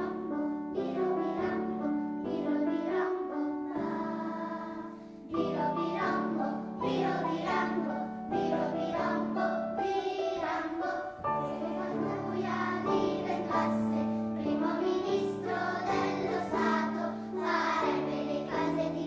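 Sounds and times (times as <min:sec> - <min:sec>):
children's choir singing: 0:00.0 - 0:19.0
piano accompaniment: 0:00.0 - 0:19.0.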